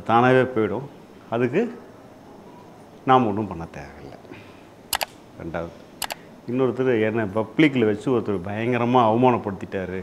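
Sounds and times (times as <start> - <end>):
sharp clicks: 4.9 - 5.2, 6.0 - 6.2.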